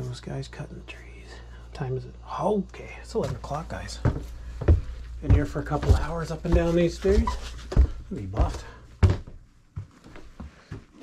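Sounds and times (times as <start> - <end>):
footsteps on carpeted stairs: 3.2 - 11.0.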